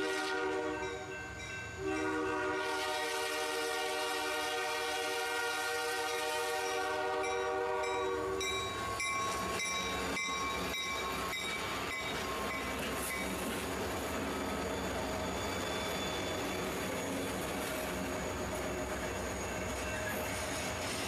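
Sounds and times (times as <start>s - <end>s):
train air horn: 0.0s - 1.0s, 1.8s - 8.4s
train wheels clickety-clack: 6.8s - 21.0s.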